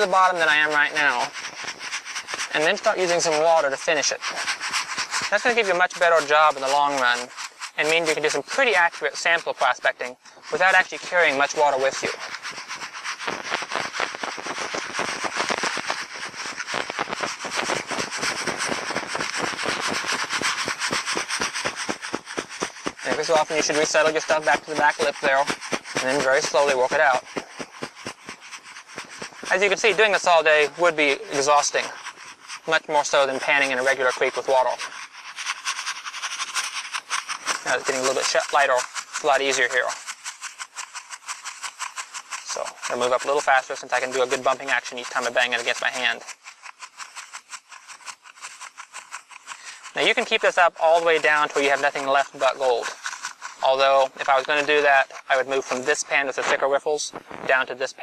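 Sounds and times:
gravel rattling in plastic pan: 0.0s - 58.0s.

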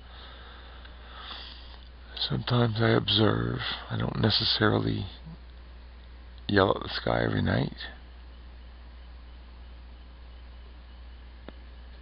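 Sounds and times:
person sniffing inhale: 0.1s - 1.8s.

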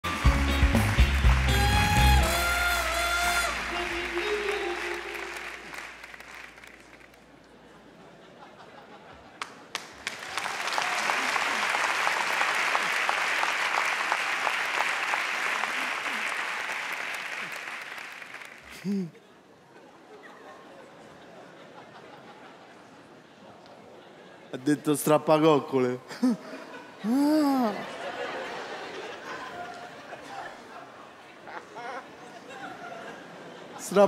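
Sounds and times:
band jingle with horns and bass: 0.0s - 5.4s
studio audience applause: 0.0s - 7.3s, 9.4s - 19.1s.

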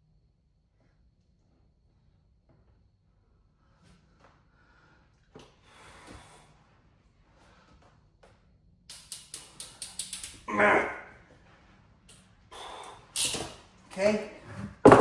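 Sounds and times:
man grunting: 10.4s - 11.2s.

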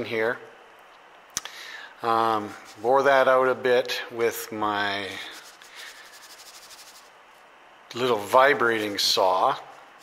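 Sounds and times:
faint rapid scratching: 4.9s - 7.6s.

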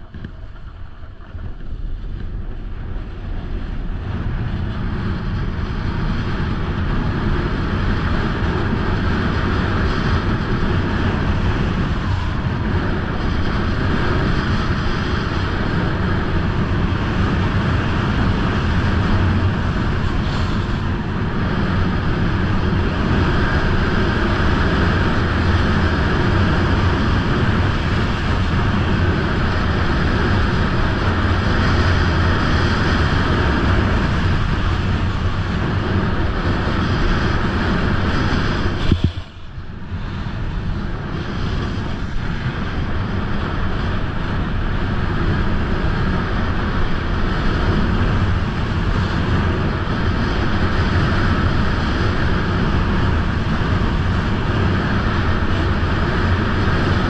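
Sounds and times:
snowboard scraping over snow: 0.0s - 57.0s
wind on microphone: 0.0s - 57.0s.

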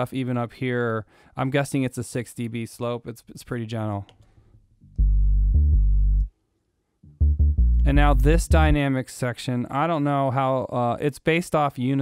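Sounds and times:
low synth bass line: 4.8s - 6.3s, 7.0s - 8.8s.

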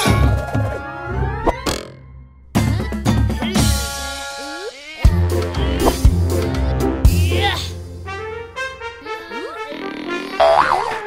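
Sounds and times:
cartoon background music: 0.0s - 11.0s
loud springy boing: 10.4s - 11.0s.

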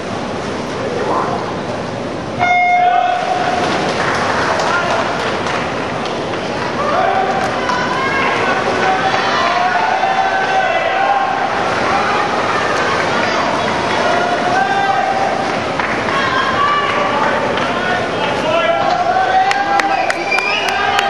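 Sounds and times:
crowd shouting and cheering: 2.4s - 21.0s.

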